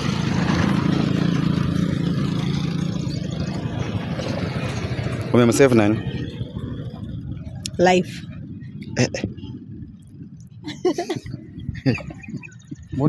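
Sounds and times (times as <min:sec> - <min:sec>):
vehicle engine running: 0:00.0 - 0:13.0.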